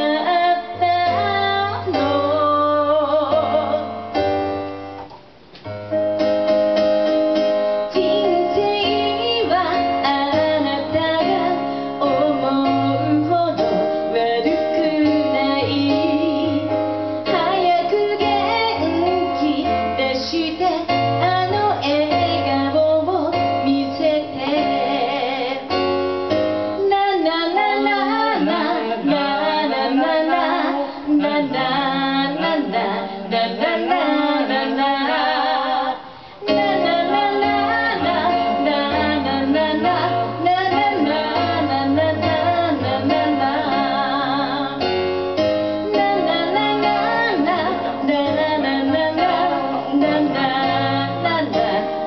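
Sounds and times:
woman singing: 0.0 - 4.0, 7.9 - 25.8, 26.8 - 44.9, 45.8 - 52.0
electric keyboard: 0.0 - 52.0
electric piano: 0.0 - 52.0.

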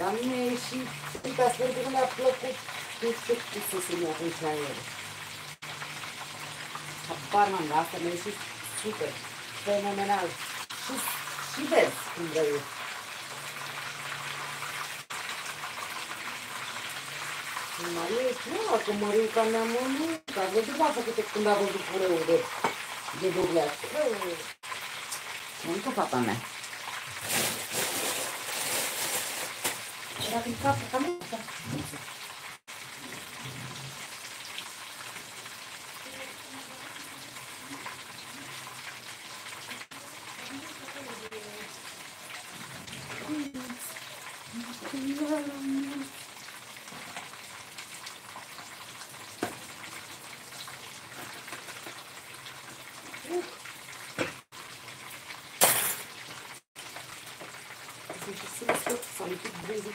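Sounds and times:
food sizzling in oil: 0.0 - 59.9.

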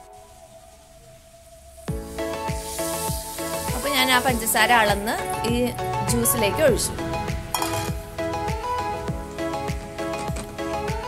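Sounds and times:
background music with drum beat: 1.9 - 11.0.

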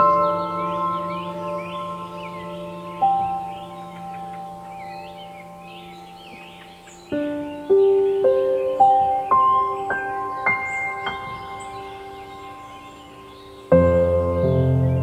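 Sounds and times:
small birds chirping: 0.0 - 15.0
soft piano chords: 0.0 - 15.0.

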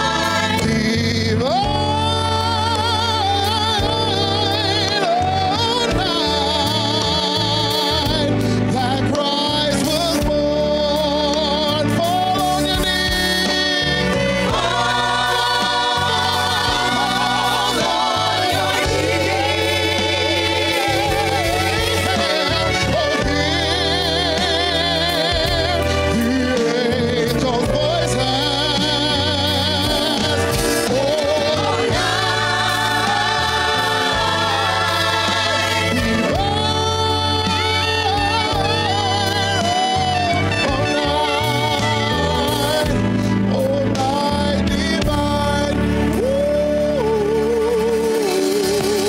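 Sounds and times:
live band playing: 0.0 - 49.0
vocal group singing gospel: 0.0 - 49.0.

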